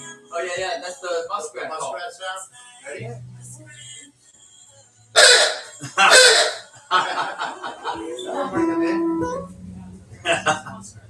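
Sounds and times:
guitar playing: 0.0s - 1.4s, 3.0s - 3.9s, 7.0s - 11.0s
people laughing: 5.7s - 8.8s, 10.2s - 11.0s.

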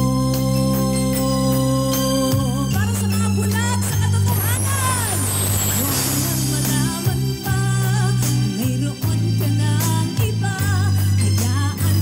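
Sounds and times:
live pop music through speakers: 0.0s - 12.0s
person singing: 0.0s - 12.0s.

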